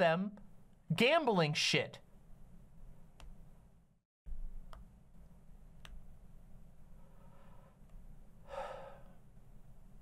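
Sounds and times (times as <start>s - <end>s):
breathy intake near microphone: 8.4s - 9.2s.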